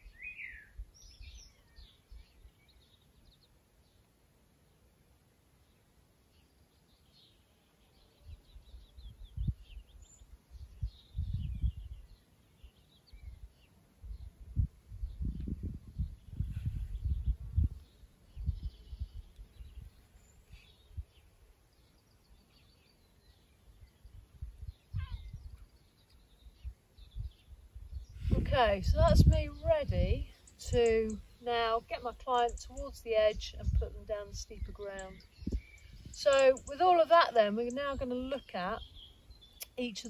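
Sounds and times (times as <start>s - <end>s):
faint bird chirps: 0.0s - 4.1s, 5.6s - 28.4s, 29.1s - 40.0s
wind gusting on microphone: 8.3s - 12.2s, 13.1s - 21.3s, 23.9s - 25.7s, 26.4s - 39.5s.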